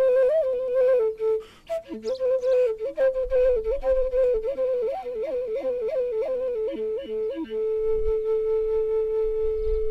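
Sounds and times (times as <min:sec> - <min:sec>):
solo flute melody: 0:00.0 - 0:09.9.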